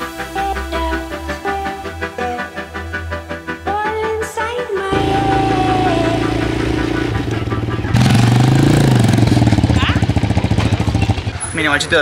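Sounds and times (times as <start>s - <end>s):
music: 0.0s - 12.0s
small motorcycle engine revving: 4.9s - 11.2s.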